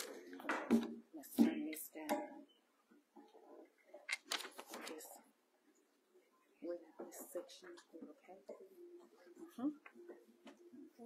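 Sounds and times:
handling rustling and clicks: 0:04.0 - 0:05.0.

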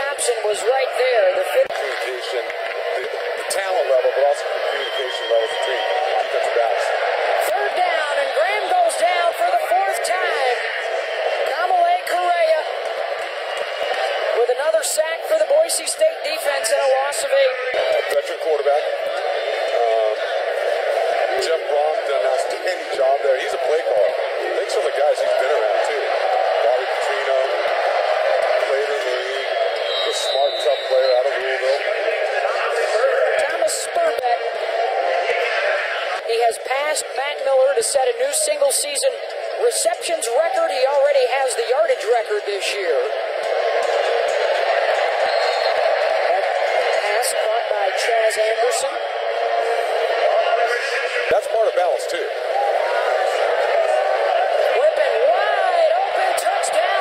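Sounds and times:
tinny voices talking: 0:00.0 - 0:57.0.

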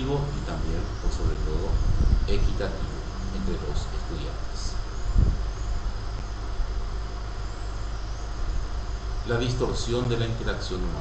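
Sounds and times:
low background hum and rumble: 0:00.0 - 0:11.0.

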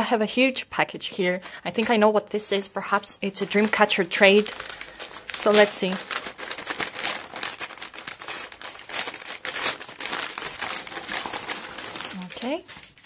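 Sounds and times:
paper envelope tearing and crinkling: 0:03.4 - 0:13.0.

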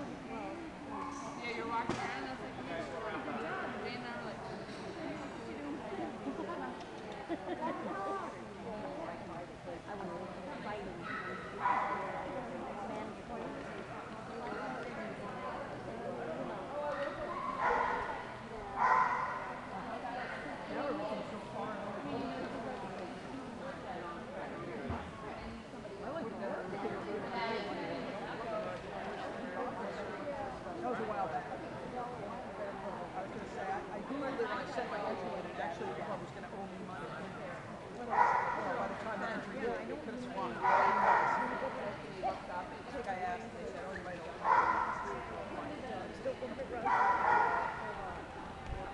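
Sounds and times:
background chatter: 0:00.0 - 0:48.9
dog barking: 0:11.1 - 0:12.1, 0:17.4 - 0:18.1, 0:18.8 - 0:19.4, 0:40.6 - 0:41.4, 0:44.5 - 0:45.0, 0:46.8 - 0:47.8.

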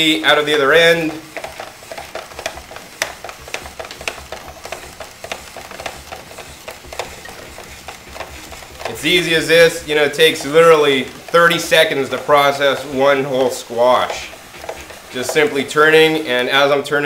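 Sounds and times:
blade cutting squash crackling: 0:00.0 - 0:16.3.

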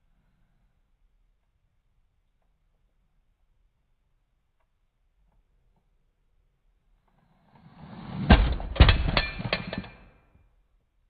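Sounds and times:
toy car crashing knock: 0:08.2 - 0:10.1.

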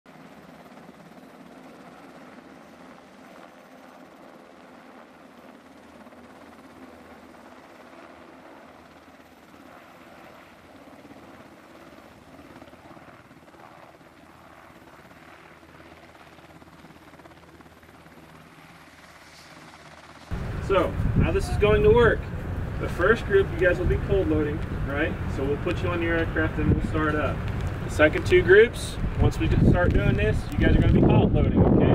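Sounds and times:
helicopter rotors and engines: 0:00.1 - 0:31.9.

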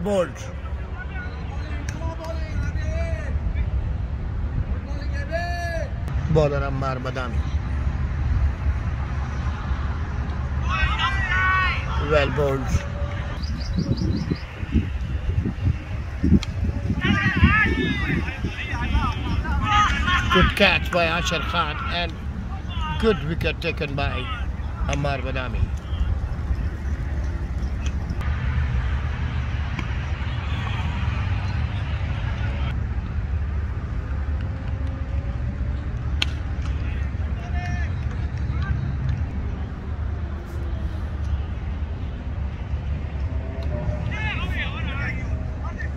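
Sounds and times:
distant players' voices: 0:00.0 - 0:45.9
low outdoor rumble: 0:00.0 - 0:45.9.

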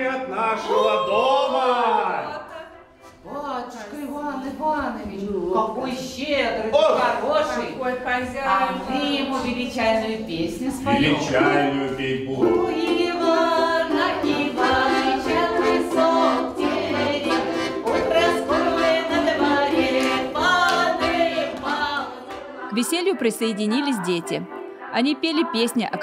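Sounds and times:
women singing together: 0:04.9 - 0:26.0
person narrating: 0:10.8 - 0:12.2, 0:22.7 - 0:26.0.

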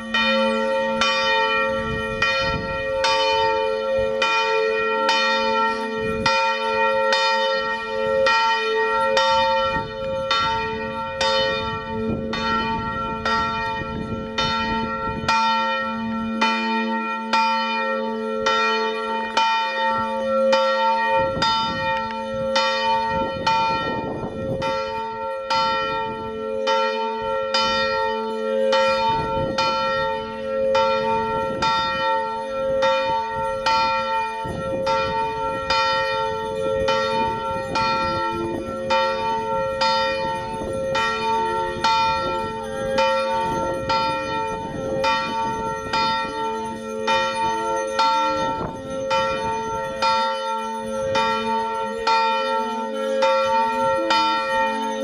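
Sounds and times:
church bells ringing: 0:00.0 - 0:55.0.

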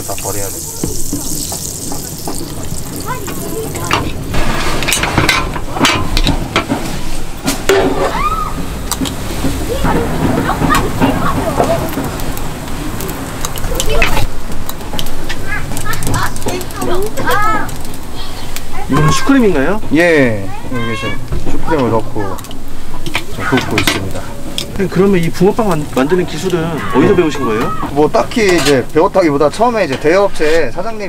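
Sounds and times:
voices chattering: 0:00.0 - 0:04.4, 0:08.5 - 0:31.0
batter sizzling: 0:00.0 - 0:31.0
metal molds and utensils clanking: 0:00.1 - 0:08.2, 0:21.4 - 0:30.7.

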